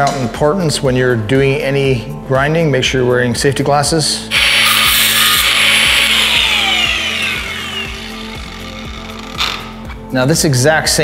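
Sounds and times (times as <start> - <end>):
background music with steady beat: 0.0 - 11.0
angle grinder winding down: 4.3 - 10.0.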